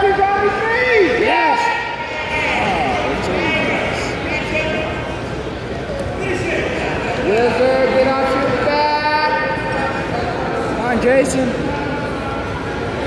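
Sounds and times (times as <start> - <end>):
people calling out: 0.0 - 5.0
crowd chatter: 0.0 - 13.0.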